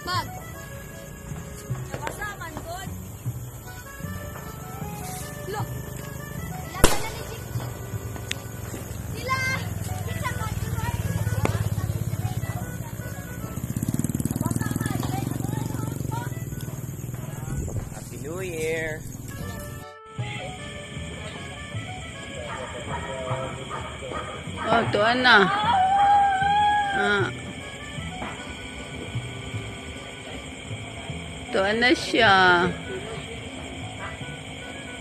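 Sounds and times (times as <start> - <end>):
background music: 0.0 - 17.5, 18.2 - 35.0
people's voices: 4.4 - 27.4, 28.4 - 35.0
firecracker bang: 6.7 - 9.2.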